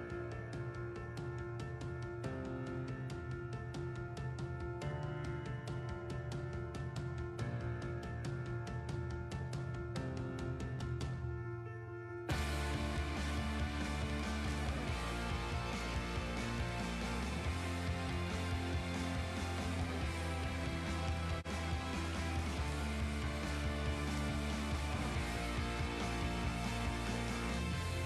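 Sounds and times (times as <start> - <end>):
instrumental background music: 0.0 - 28.0.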